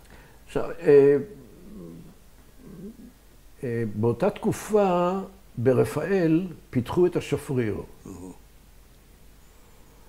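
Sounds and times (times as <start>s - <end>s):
man speaking: 0.5s - 1.4s, 3.6s - 8.4s.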